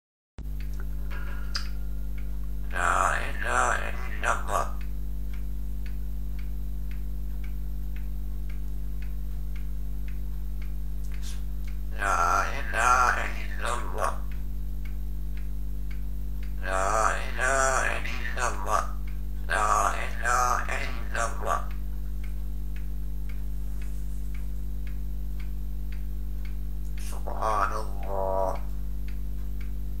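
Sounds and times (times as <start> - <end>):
faint regular ticking: 0.4 - 30.0
low electrical hum: 0.4 - 30.0
parrot voice-like call: 12.0 - 14.2, 16.6 - 21.7, 27.0 - 28.7.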